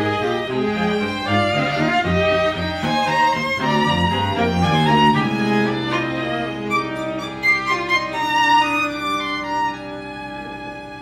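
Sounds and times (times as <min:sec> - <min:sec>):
string quartet playing: 0:00.0 - 0:11.0.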